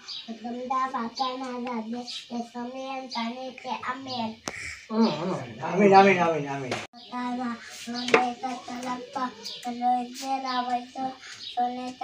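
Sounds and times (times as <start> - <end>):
child chanting a prayer: 0.0 - 5.5, 7.0 - 12.0.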